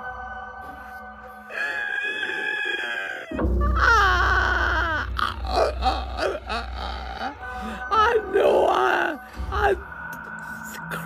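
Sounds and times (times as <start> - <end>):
wavering vocal: 1.4 - 11.0.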